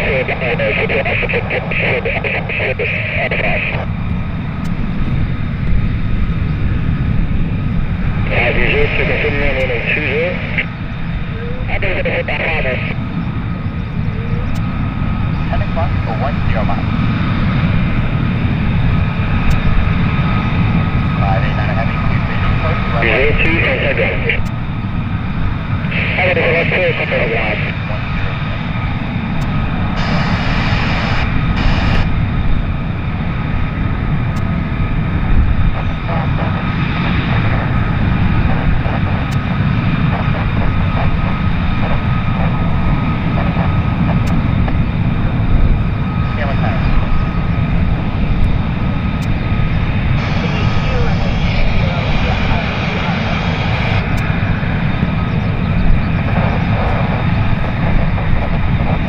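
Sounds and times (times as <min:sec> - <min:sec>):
high jet whine: 0:00.0 - 0:59.0
jet engine rumble: 0:00.0 - 0:59.0.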